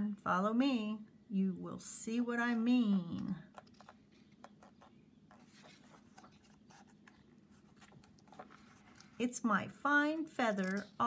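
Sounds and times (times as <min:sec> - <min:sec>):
paper page turning: 0:03.5 - 0:09.3, 0:10.4 - 0:11.0.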